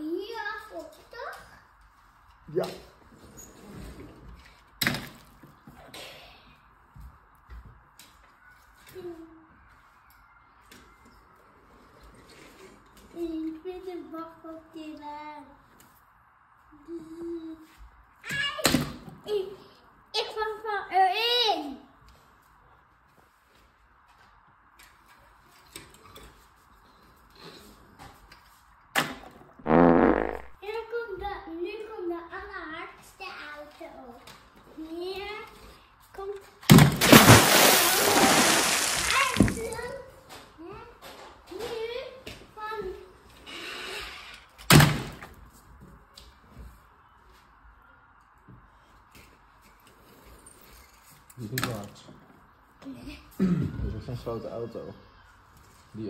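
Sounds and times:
toy cars knocking into plastic box: 0:38.2 - 0:39.8.

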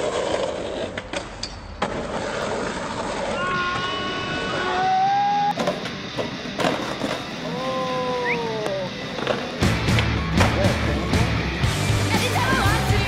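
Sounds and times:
bass-heavy music: 0:07.6 - 0:13.0.

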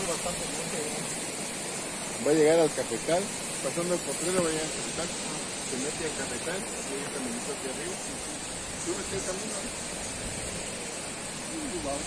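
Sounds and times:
steady high hiss: 0:00.0 - 0:12.0.

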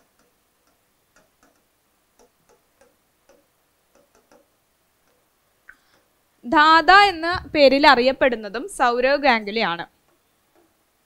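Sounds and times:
marker pen on whiteboard: 0:00.0 - 0:06.2.

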